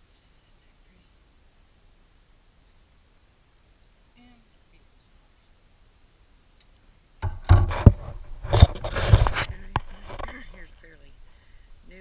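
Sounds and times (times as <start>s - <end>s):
metal hive tool knocking: 7.2s - 10.5s
wooden frames thumping and scraping: 7.2s - 10.7s.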